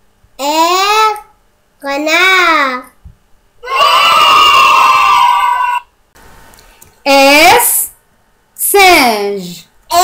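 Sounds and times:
fox scream: 0:03.6 - 0:05.9.

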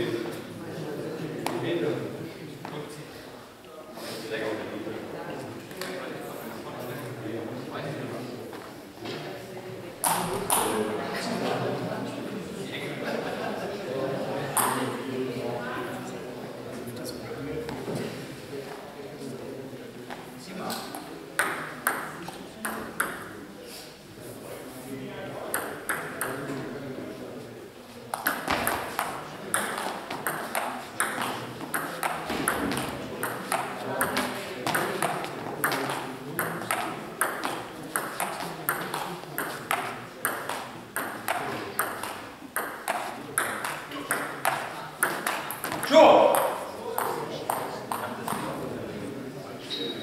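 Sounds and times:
table tennis ball clicking: 0:25.5 - 0:26.4, 0:28.2 - 0:45.8.

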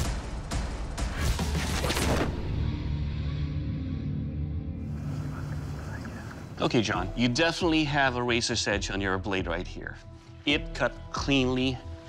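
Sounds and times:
dramatic soundtrack music: 0:00.0 - 0:12.0.

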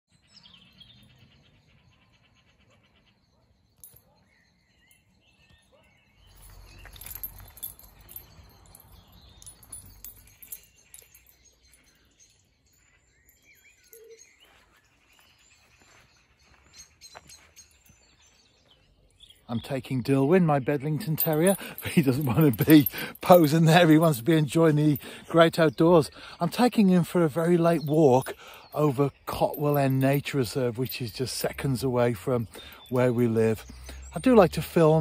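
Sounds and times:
birdsong and chirping: 0:00.1 - 0:35.0
footsteps on dirt path: 0:14.4 - 0:19.0.

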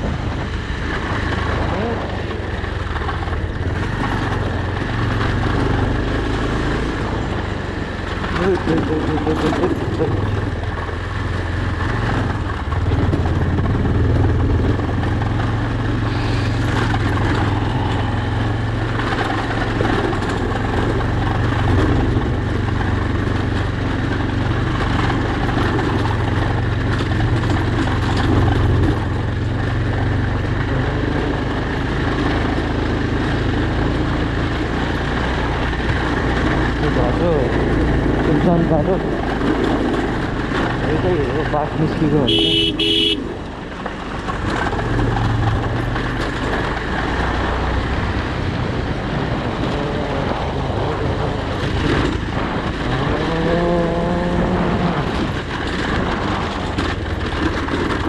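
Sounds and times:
motorcycle engine at low speed: 0:00.0 - 0:58.0.

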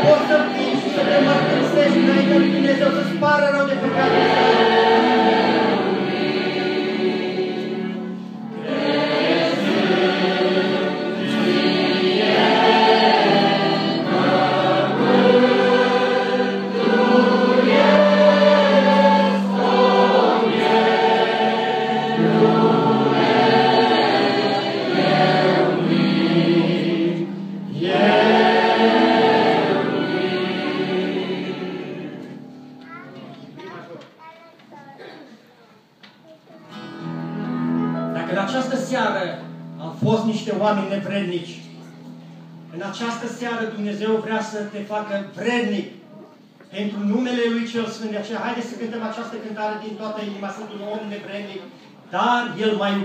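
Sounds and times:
mixed choir singing a hymn: 0:00.0 - 0:32.8.

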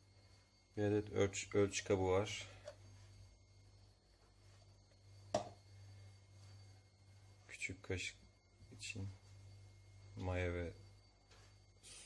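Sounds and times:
faint low hum: 0:00.0 - 0:12.0
plastic cup knocking on countertop: 0:05.3 - 0:05.6.

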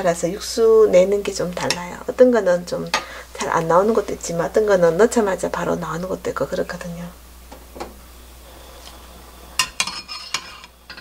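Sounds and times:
broth simmering: 0:00.0 - 0:11.0.

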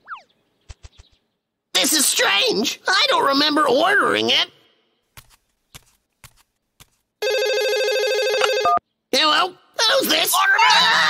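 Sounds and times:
telephone ringing: 0:07.2 - 0:08.8.

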